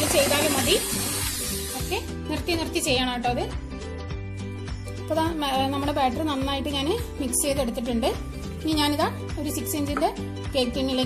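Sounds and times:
electric hand mixer whirring: 0.0 - 2.1
background music: 0.0 - 11.0.

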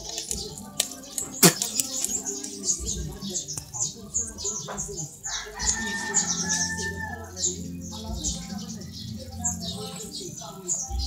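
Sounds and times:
sharp clicks: 0.1 - 2.6.

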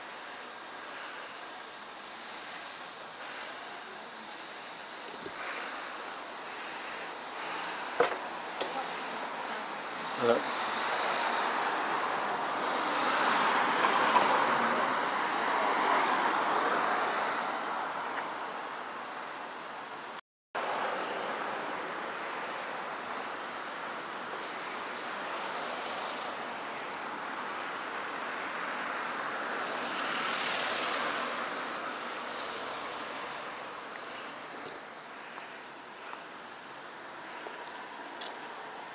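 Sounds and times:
cars passing: 0.0 - 38.9.

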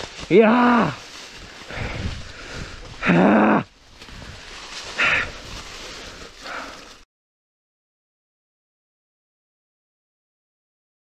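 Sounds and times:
dry leaves crunching underfoot: 0.0 - 7.0
breathy exhale: 1.6 - 2.9, 4.1 - 7.0
man grunting with effort: 3.0 - 3.7.

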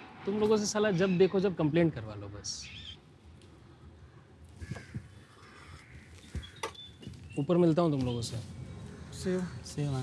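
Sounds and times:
faint street background: 0.0 - 10.0
bird cawing: 2.4 - 7.3, 8.6 - 10.0.

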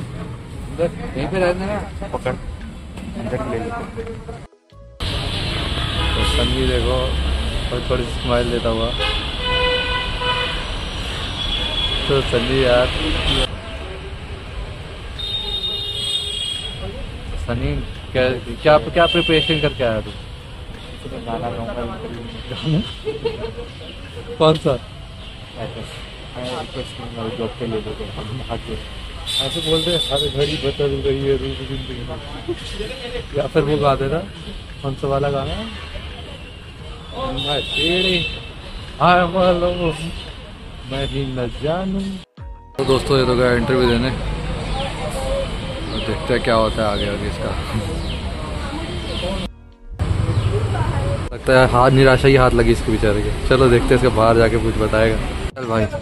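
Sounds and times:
street traffic noise: 0.0 - 56.0
vehicle horn honking: 5.0 - 6.9, 8.8 - 12.5, 15.2 - 16.9, 18.9 - 20.1, 29.3 - 32.2, 35.7 - 38.7.

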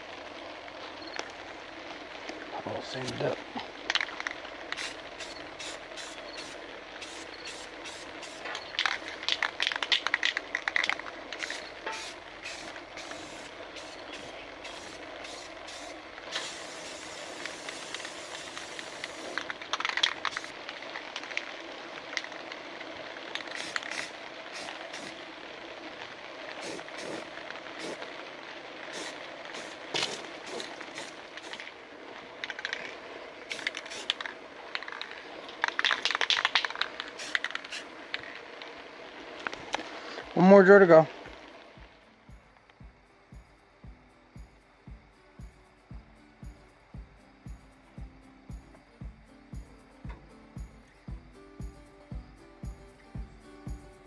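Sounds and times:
spray paint can hissing: 4.7 - 20.5, 23.4 - 25.2, 26.6 - 28.0, 28.9 - 31.7, 33.5 - 34.2, 36.1 - 37.9.

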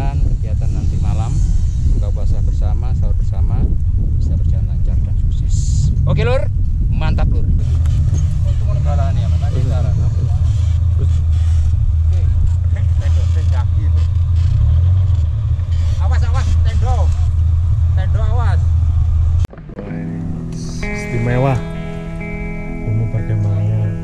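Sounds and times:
vehicle engine idling: 0.3 - 24.0
guitar music: 19.5 - 24.0.

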